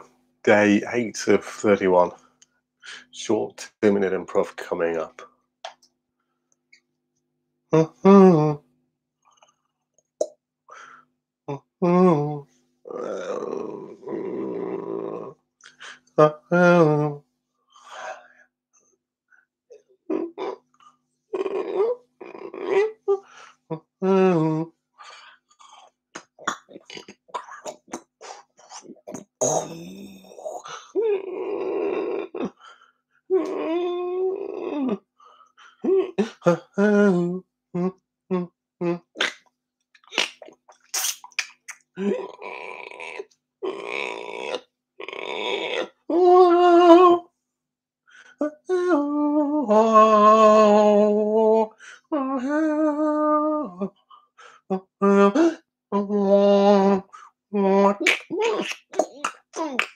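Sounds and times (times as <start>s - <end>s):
man vocalizing wordlessly: 0.0s - 2.2s, 2.9s - 5.8s, 7.7s - 8.6s, 11.5s - 17.2s, 20.1s - 20.6s, 21.3s - 35.0s, 35.6s - 39.4s, 40.0s - 47.3s, 48.2s - 59.9s
rough throaty male voice: 0.0s - 2.2s, 2.9s - 5.3s, 7.8s - 8.6s, 11.5s - 17.2s, 26.2s - 32.6s, 36.1s - 39.4s, 56.8s - 59.9s
percussive mouth sounds: 4.8s - 5.9s, 9.3s - 10.4s, 11.5s - 17.0s, 19.7s - 35.0s, 35.6s - 46.5s, 56.6s - 59.9s
man singing held note: 11.8s - 13.9s
breathy hissing mouth sounds: 25.0s - 31.0s, 40.0s - 43.2s, 58.0s - 59.9s.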